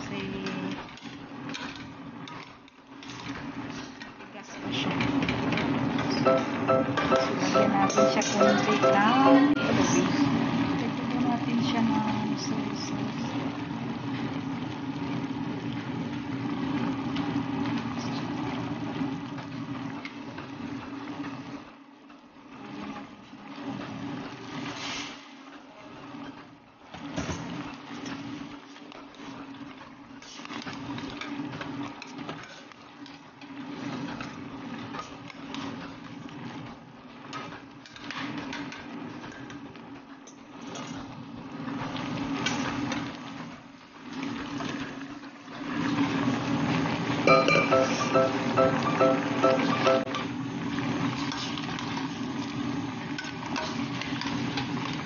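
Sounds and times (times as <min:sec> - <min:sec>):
chicken sizzling in a pot: 0:22.5 - 0:26.2, 0:40.3 - 0:55.0.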